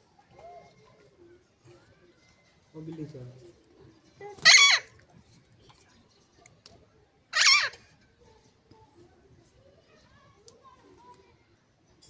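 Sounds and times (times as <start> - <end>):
parakeet squawk: 4.4 - 4.9, 7.3 - 7.8.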